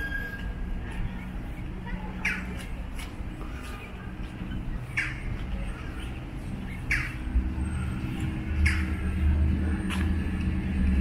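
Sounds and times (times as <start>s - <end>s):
steady low rumble: 0.0s - 11.0s
bird squawk: 6.7s - 7.3s.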